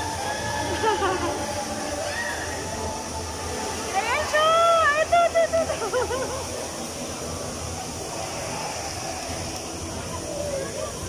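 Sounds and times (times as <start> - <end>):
amusement park hall background noise: 0.0 - 11.0
faint distant voices: 0.0 - 11.0.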